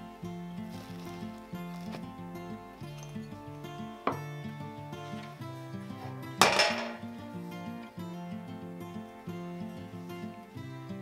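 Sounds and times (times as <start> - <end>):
acoustic guitar music: 0.0 - 11.0
metallic clank of balance scale: 6.4 - 7.2.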